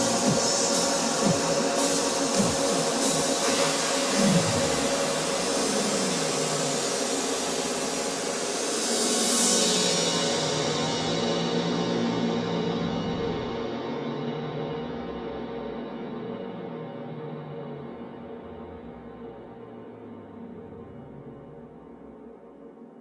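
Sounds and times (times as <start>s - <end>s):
noise sweep: 0.0s - 23.0s.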